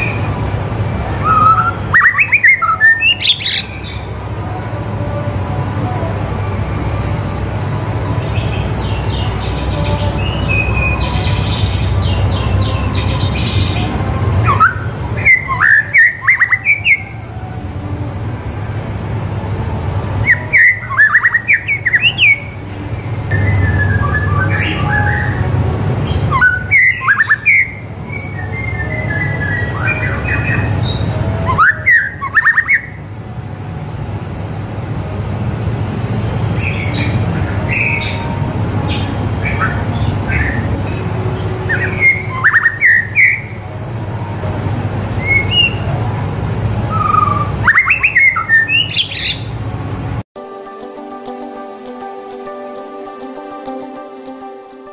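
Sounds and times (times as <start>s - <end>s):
bird whistling loud sharp notes: 1.2s - 3.6s
soft bird twittering: 38.8s - 43.6s, 46.9s - 49.6s.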